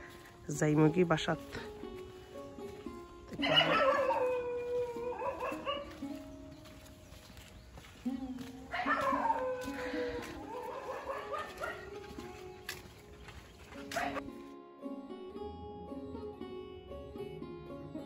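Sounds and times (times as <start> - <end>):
background music: 0.0 - 18.0
dog howling: 3.4 - 6.1, 8.7 - 12.1.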